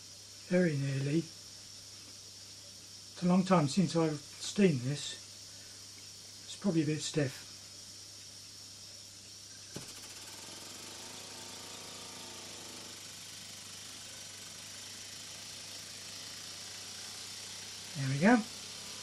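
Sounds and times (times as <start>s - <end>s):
gas burner hissing: 9.7s - 19.0s
small steam engine running fast: 9.8s - 19.0s.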